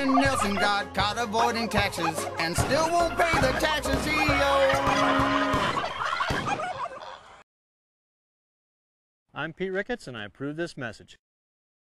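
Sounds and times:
turkey gobbling: 0.0s - 7.2s.

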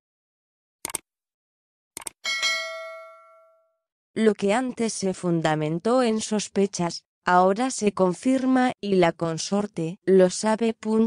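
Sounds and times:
bright bell chime: 2.3s - 3.7s.

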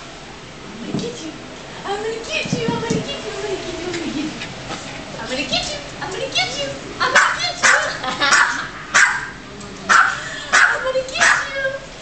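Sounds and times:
dog barking: 7.1s - 11.6s.

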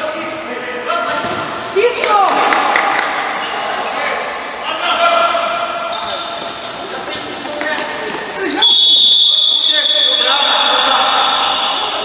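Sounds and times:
shoes squeaking on court: 0.2s - 2.2s, 5.4s - 9.1s
referee's whistle long blast: 8.6s - 10.9s.

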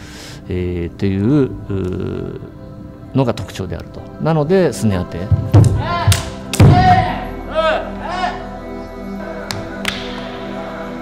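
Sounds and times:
people shouting: 5.6s - 8.5s.

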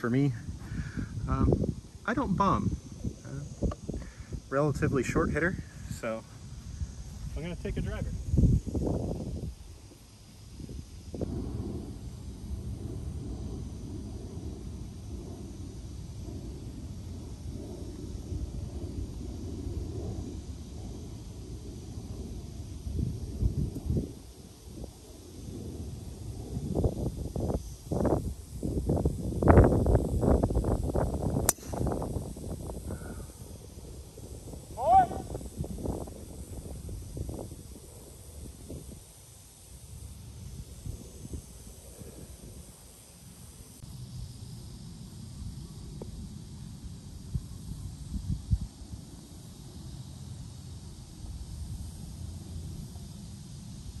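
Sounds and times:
golf club striking ball: 31.4s - 32.1s.

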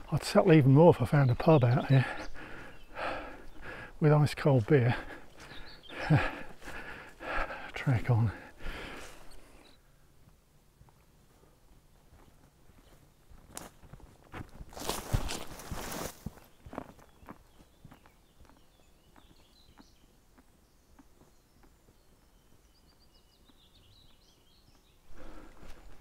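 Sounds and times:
footsteps on a dirt path: 0.8s - 26.0s.

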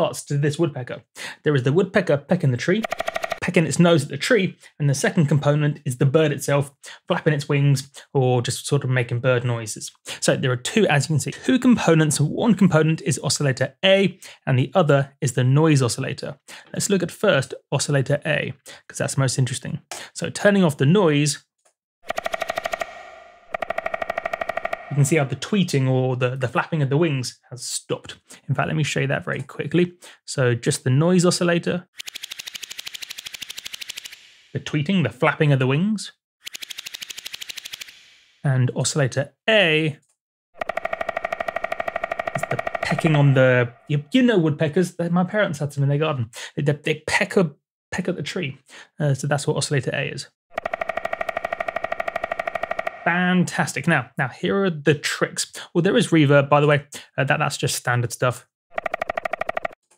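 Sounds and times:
synthesized woodpecker pecking: 2.8s - 3.5s, 22.0s - 25.3s, 31.9s - 34.6s, 36.4s - 38.4s, 40.6s - 43.9s, 50.5s - 53.2s, 58.7s - 59.8s.

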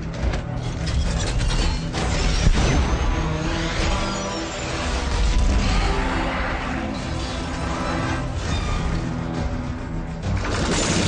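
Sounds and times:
dramatic film music: 0.0s - 11.0s.

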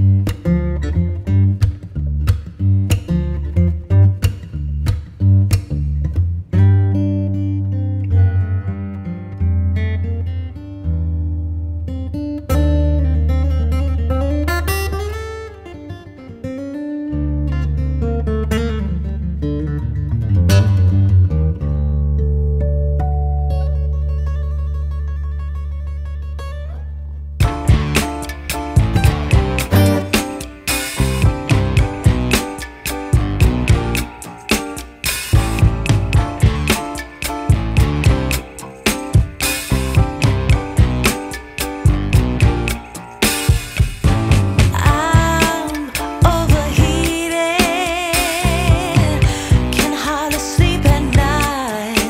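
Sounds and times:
acoustic guitar music: 0.0s - 52.0s.

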